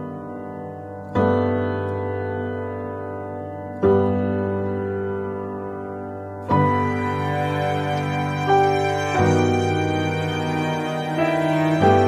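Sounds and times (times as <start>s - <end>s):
piano chords ringing: 0.0s - 12.0s.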